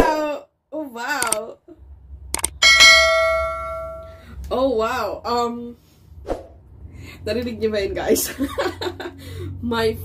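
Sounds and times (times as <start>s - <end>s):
mouse clicks: 2.4s - 2.6s
notification bell ding: 2.6s - 4.2s.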